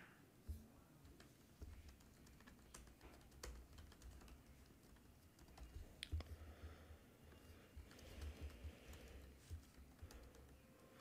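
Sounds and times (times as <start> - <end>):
computer keyboard typing: 1.0 - 6.4, 7.7 - 11.0.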